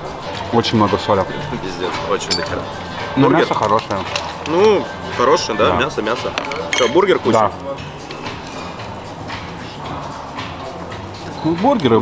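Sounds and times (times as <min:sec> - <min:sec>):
faint music: 0:00.0 - 0:12.0
murmur of diners: 0:00.0 - 0:12.0.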